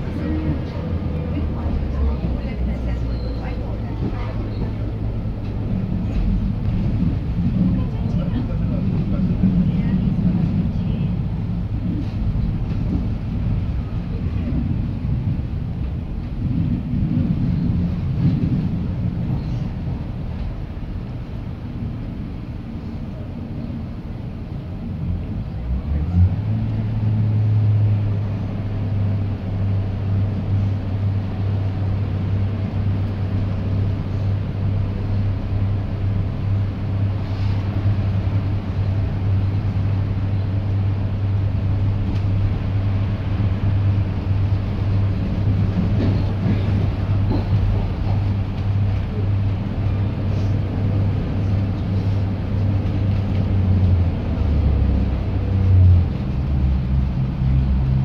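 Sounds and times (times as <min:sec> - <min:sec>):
diesel engine drone: 0:00.0 - 0:58.0
train wheels rumbling on track: 0:00.0 - 0:58.0.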